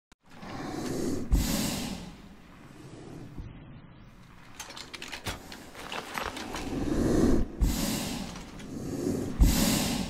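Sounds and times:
heavy breathing: 0.4s - 3.5s, 4.8s - 10.0s.

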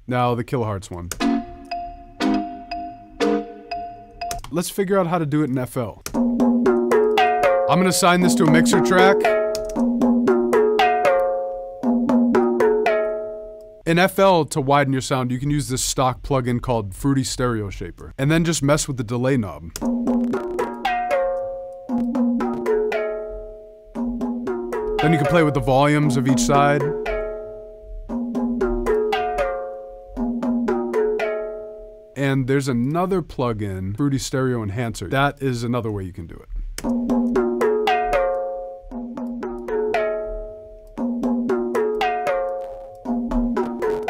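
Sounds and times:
pitched melodic notes ringing: 1.2s - 4.6s, 6.2s - 13.9s, 19.8s - 32.4s, 36.9s - 44.0s
light percussive ticks: 3.7s - 4.6s, 5.4s - 6.2s, 8.2s - 9.9s, 19.8s - 23.1s, 36.8s - 37.4s, 39.2s - 39.7s.

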